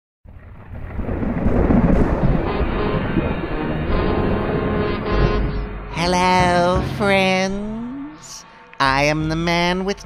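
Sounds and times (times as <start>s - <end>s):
thunder rumbling: 0.3s - 8.4s.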